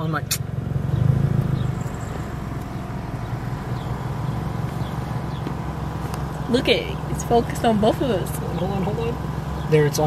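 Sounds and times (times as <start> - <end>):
car engine hum: 0.0 - 10.0
road and air noise: 0.0 - 10.0.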